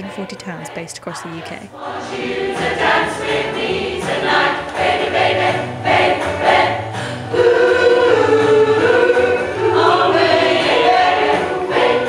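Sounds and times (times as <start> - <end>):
choir singing a pop song: 0.0 - 12.0.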